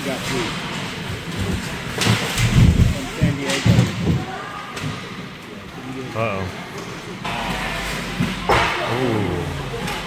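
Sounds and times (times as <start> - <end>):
crowd voices echoing: 7.3 - 10.0.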